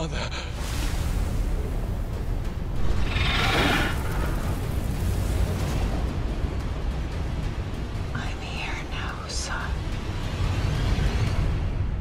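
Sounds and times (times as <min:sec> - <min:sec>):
deep steady rumble: 0:00.0 - 0:12.0
rushing hiss: 0:00.3 - 0:06.3.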